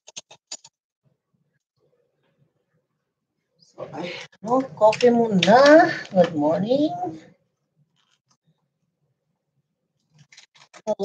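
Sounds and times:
person speaking: 0:03.8 - 0:07.3.

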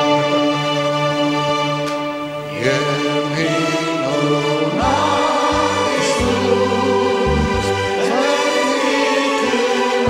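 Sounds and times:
keyboard accompaniment: 0:00.0 - 0:10.0
vocal trio singing in harmony: 0:00.0 - 0:10.0.

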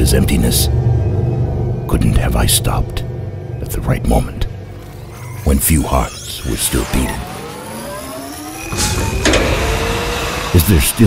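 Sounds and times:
low rumble: 0:00.0 - 0:07.7
rising whine of tones: 0:00.0 - 0:11.0.

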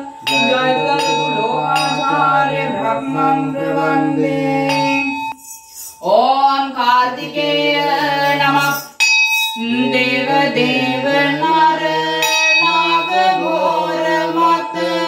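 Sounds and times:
person singing devotional song: 0:00.0 - 0:15.0.

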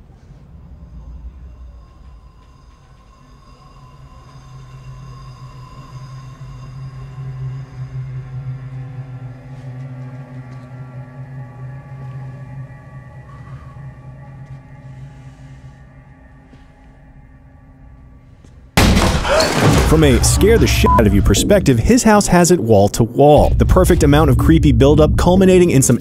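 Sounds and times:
droning horror film score: 0:00.0 - 0:26.0.

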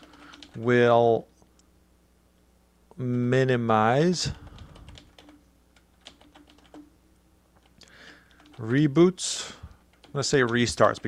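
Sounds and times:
faint computer keyboard typing: 0:00.0 - 0:00.7, 0:04.3 - 0:06.9, 0:07.6 - 0:08.8, 0:09.7 - 0:11.0.

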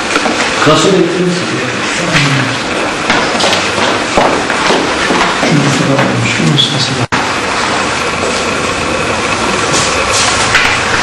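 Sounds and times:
loud room noise: 0:00.0 - 0:11.0.

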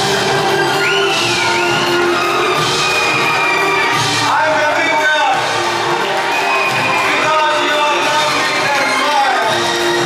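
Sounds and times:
audience cheering: 0:00.0 - 0:10.0
live rock band over loudspeakers: 0:00.0 - 0:10.0.

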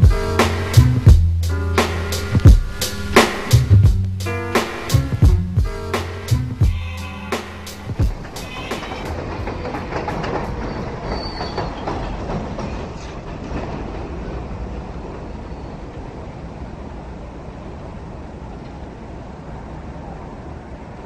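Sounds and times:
elevated train rumbling on tracks: 0:00.0 - 0:21.0
train wheel clacks: 0:04.4 - 0:16.2
high wheel squeal: 0:05.8 - 0:13.3.

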